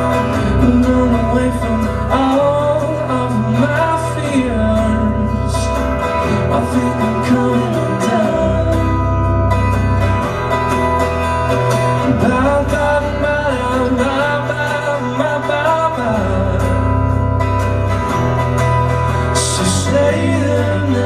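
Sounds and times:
man singing: 0.0s - 9.4s, 12.0s - 17.2s, 19.3s - 21.0s
bass line: 0.0s - 21.0s
drums: 0.0s - 21.0s
electric guitars: 0.0s - 21.0s
strummed acoustic guitar: 0.0s - 21.0s.

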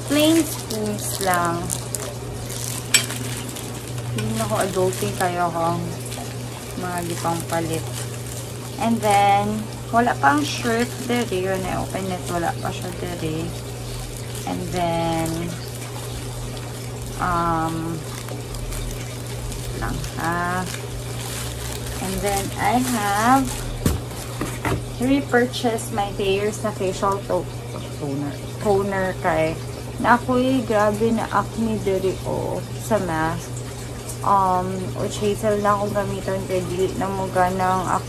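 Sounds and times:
background hiss and hum: 0.0s - 38.0s.

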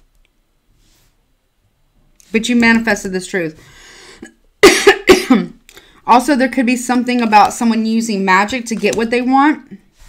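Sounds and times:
woman coughing: 4.6s - 5.6s.

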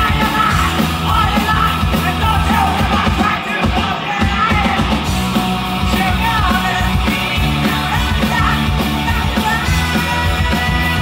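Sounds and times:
singer yelling into microphone: 0.0s - 5.0s, 5.9s - 11.0s
live rock band playing: 0.0s - 11.0s.

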